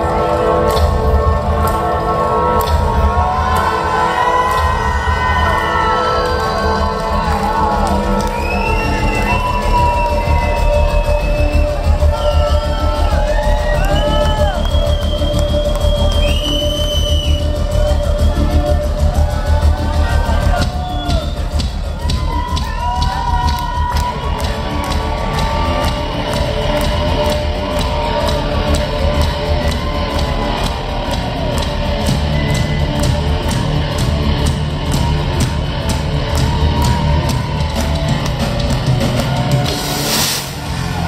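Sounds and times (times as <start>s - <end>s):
live rock band playing loudly: 0.0s - 41.0s
drum beat: 2.6s - 41.0s.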